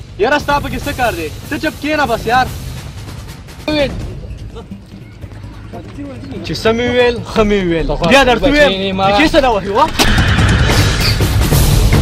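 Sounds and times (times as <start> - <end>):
dramatic soundtrack music: 0.0 - 12.0
man speaking: 5.8 - 9.9.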